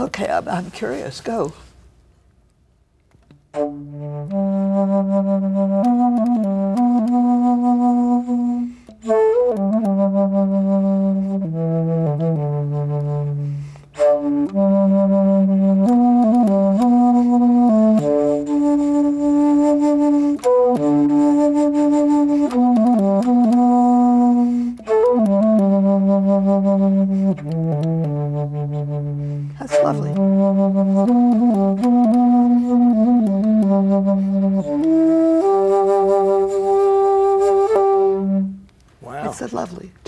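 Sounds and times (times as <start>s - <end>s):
bass flute melody: 3.5s - 39.3s.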